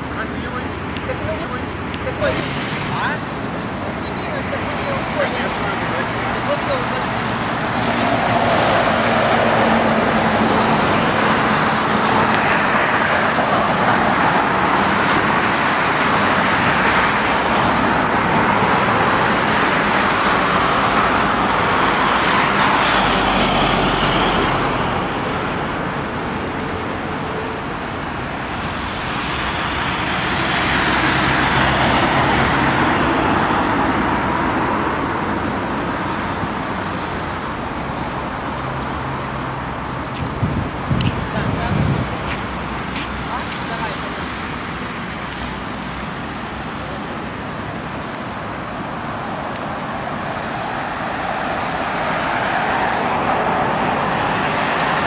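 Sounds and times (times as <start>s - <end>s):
road traffic: 0.0s - 55.0s.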